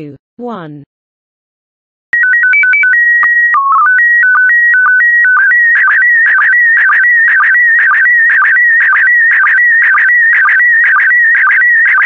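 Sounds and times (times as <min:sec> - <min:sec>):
alternating beeping tones: 0:02.2 - 0:12.0.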